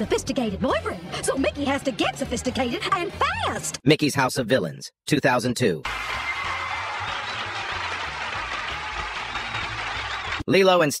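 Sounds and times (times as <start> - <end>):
cartoon audience applauding: 5.8 - 10.5.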